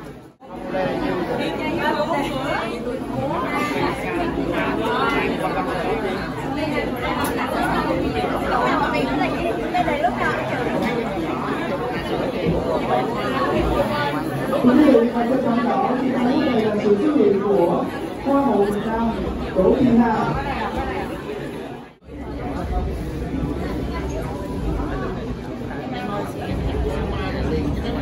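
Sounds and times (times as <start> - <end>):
overlapping chatter: 0.0 - 28.0.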